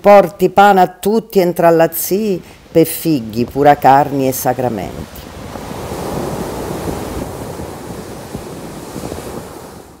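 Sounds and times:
waves washing over pebble beach: 5.2s - 10.0s.

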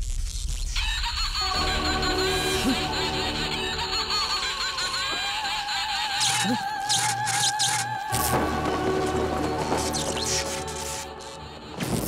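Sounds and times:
held high tone: 1.5s - 5.8s.

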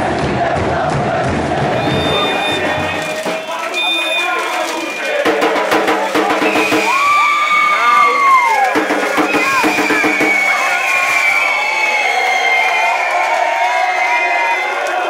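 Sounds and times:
drums beating: 0.0s - 12.1s
crowd chanting and cheering: 0.0s - 15.0s.

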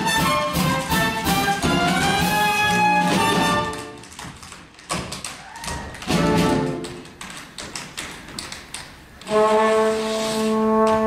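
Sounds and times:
tap shoes on wooden floor: 0.0s - 9.6s.

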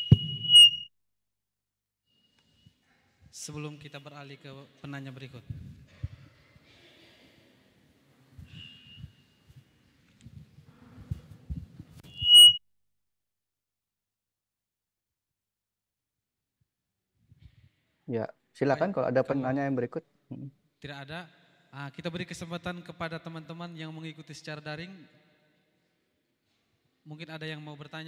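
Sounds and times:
microphone handling knocks: 0.0s - 0.6s
short low thump: 0.0s - 0.6s
microphone feedback squeal: 0.0s - 0.9s, 8.4s - 9.4s, 12.0s - 12.6s.

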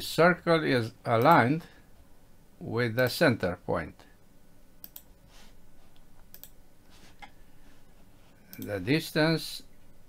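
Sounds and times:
soft rustle: 5.2s - 6.2s, 6.8s - 8.5s.

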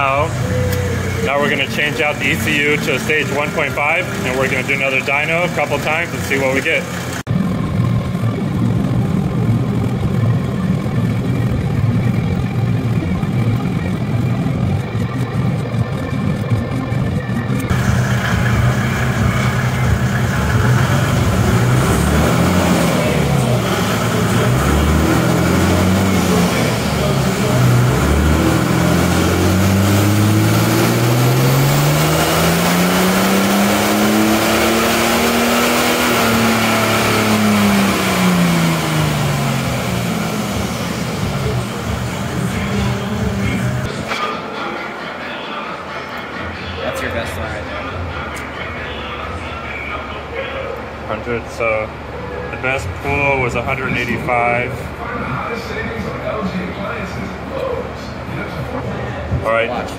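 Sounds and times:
diesel engine revving: 0.0s - 44.1s, 47.1s - 56.6s.

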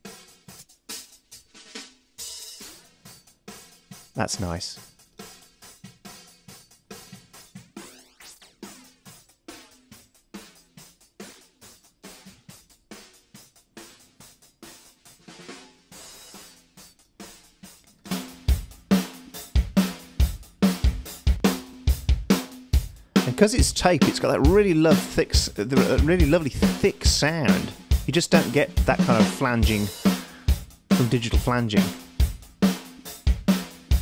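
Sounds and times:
full drum kit with kick drum: 0.0s - 7.6s, 8.7s - 16.8s, 18.1s - 34.0s.

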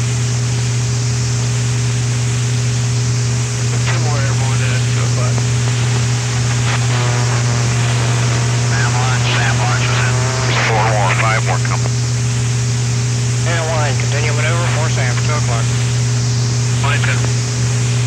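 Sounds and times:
intercom hum and hiss: 2.8s - 18.0s
garbled radio voice: 3.7s - 12.1s, 13.4s - 15.8s, 16.7s - 17.4s.

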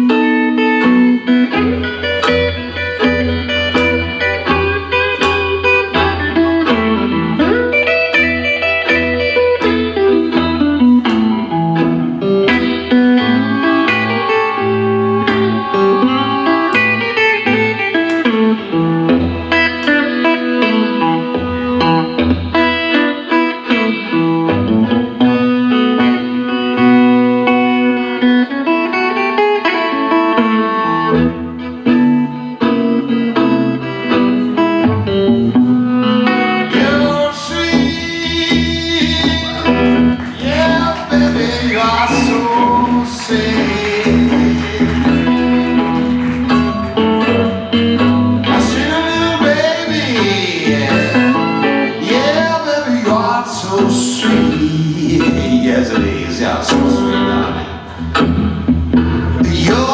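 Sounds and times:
blues band playing: 0.0s - 59.9s
electric guitar: 0.0s - 59.9s
drums: 0.1s - 14.3s
walking bass line: 0.8s - 22.9s, 34.1s - 59.9s
violin with sliding notes: 13.0s - 17.8s.

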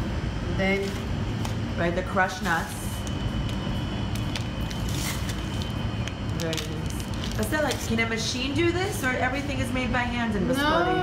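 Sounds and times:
low rumble and hum: 0.0s - 11.0s.

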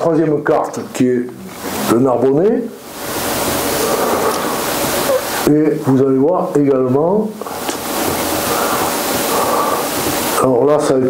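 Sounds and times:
person speaking: 0.0s - 2.8s, 3.5s - 11.0s
rushing noise on microphone: 1.6s - 6.6s, 7.4s - 11.0s.

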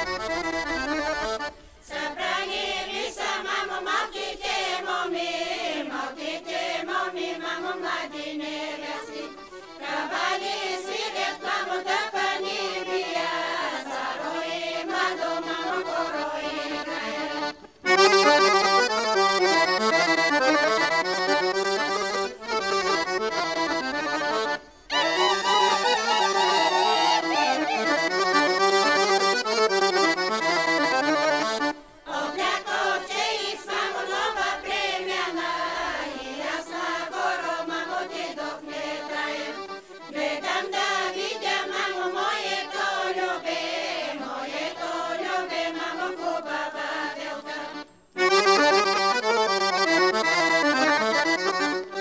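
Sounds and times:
accordion playing: 0.0s - 4.9s, 6.2s - 52.0s
women's voices singing together: 1.4s - 17.9s, 21.5s - 28.6s, 30.2s - 47.9s.

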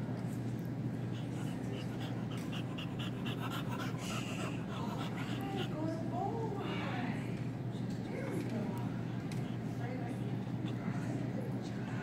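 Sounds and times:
steady low hum: 0.0s - 12.0s
dog panting: 0.9s - 7.0s, 8.8s - 12.0s.

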